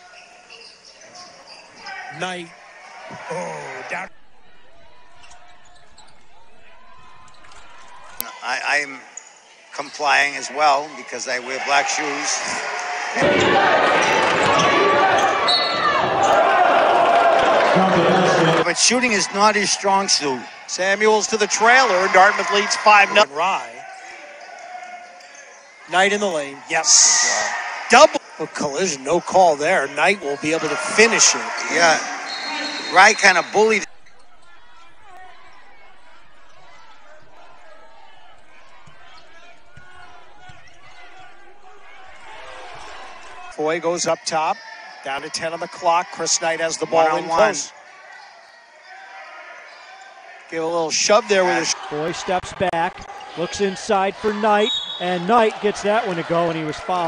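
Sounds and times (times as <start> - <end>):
crowd noise in a gym: 0.0 - 57.0.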